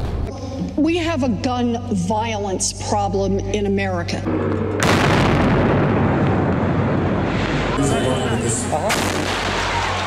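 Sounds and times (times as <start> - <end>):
loud explosion blast: 4.8 - 10.0
crowd shouting: 9.2 - 10.0.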